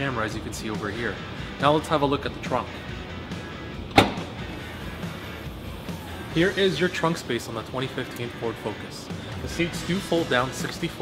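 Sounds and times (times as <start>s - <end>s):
background music: 0.0s - 11.0s
car liftgate latch click: 3.9s - 4.4s.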